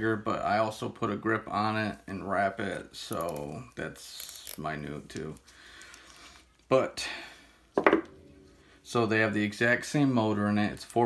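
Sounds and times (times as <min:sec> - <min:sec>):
sharp knock on table: 0:07.8 - 0:08.1.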